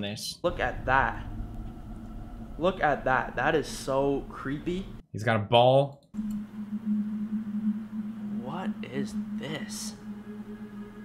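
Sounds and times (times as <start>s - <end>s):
low eerie drone tone: 0.5s - 5.0s, 6.2s - 11.0s.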